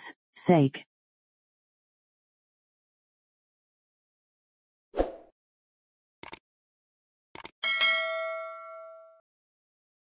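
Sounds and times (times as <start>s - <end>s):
notification bell ding: 7.6s - 9.2s.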